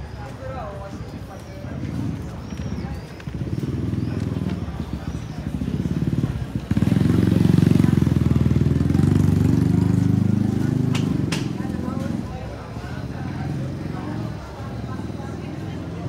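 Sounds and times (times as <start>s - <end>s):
motor scooter engine passing: 1.6s - 16.0s.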